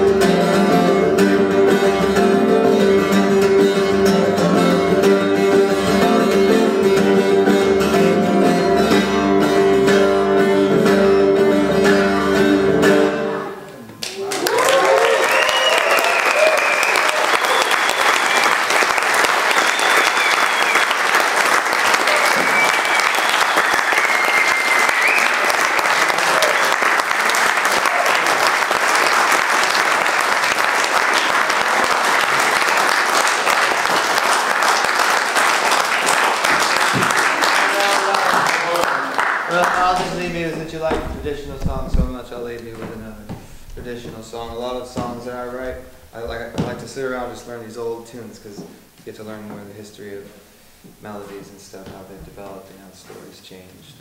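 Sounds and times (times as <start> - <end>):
audience applauding: 14.0 - 42.9
whoops and whistles: 14.3 - 18.7, 19.5 - 21.1, 22.0 - 25.5.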